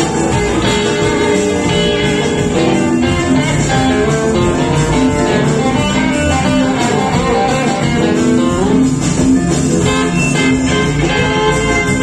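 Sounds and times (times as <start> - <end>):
electric guitar lead: 0.0 - 12.0
rock and roll band playing: 0.0 - 12.0.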